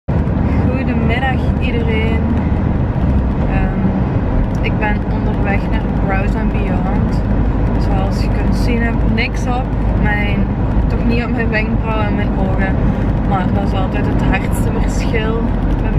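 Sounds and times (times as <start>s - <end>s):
car engine and road noise: 0.1s - 15.9s
woman talking: 0.5s - 2.4s, 3.5s - 7.2s, 7.8s - 15.9s.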